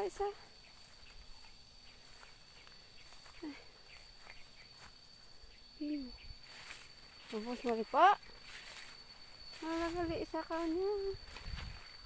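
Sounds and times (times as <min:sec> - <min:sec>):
footsteps through leafy undergrowth: 0:00.2 - 0:05.8, 0:06.4 - 0:12.0.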